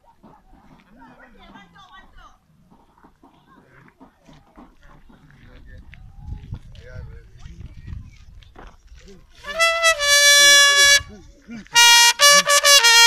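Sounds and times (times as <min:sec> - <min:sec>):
distant voices talking and calling out: 0:00.0 - 0:11.8.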